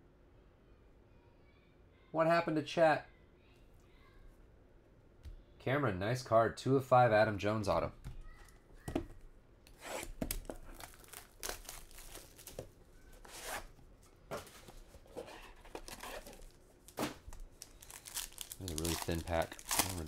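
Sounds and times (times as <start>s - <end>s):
plastic wrap tearing and crinkling: 9.8s - 13.7s, 15.6s - 20.0s.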